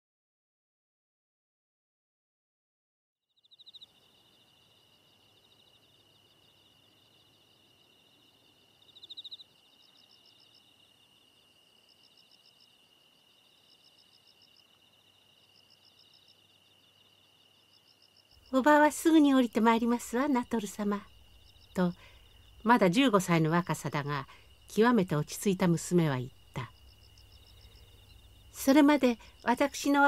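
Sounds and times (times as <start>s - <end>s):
high-pitched insect trill: 3.4s - 30.0s
insects chirping: 3.4s - 30.0s.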